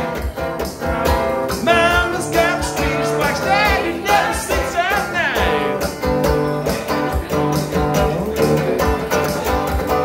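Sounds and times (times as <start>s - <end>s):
strummed electric guitar: 0.0s - 10.0s
person singing: 1.5s - 6.2s.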